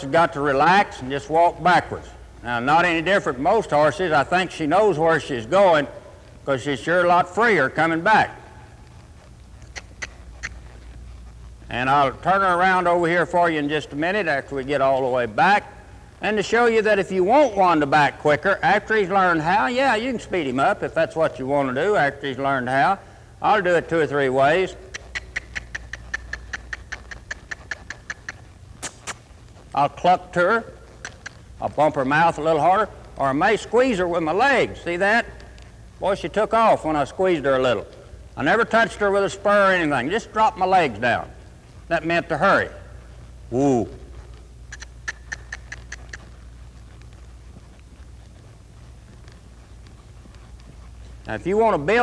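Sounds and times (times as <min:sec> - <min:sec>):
low steady hum: 0:00.0 - 0:52.0
tongue clicks urging horse: 0:09.6 - 0:10.8, 0:24.4 - 0:48.4
sharp light clicks: 0:24.9 - 0:29.6, 0:30.9 - 0:31.5, 0:44.2 - 0:52.0.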